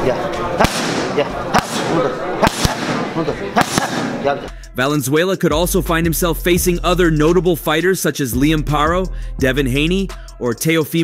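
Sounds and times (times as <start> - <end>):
voices: 0.0 - 11.0
boxing gloves smacking pads: 0.6 - 4.2.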